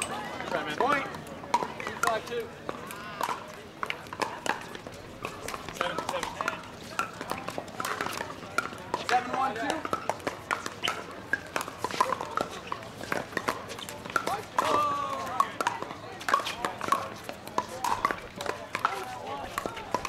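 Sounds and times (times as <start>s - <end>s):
indistinct chatter: 0.0s - 20.0s
paddles hitting plastic balls: 0.0s - 20.0s.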